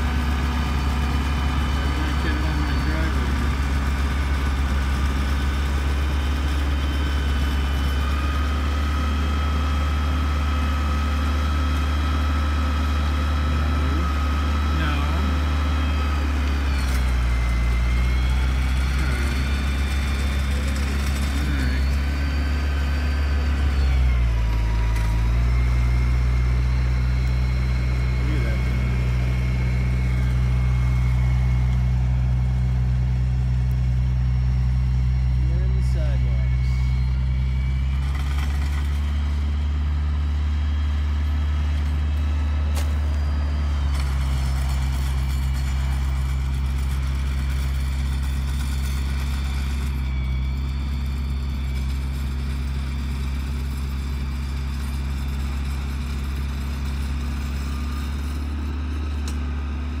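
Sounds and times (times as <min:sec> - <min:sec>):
tractor engine running under load: 0:00.0 - 1:00.0.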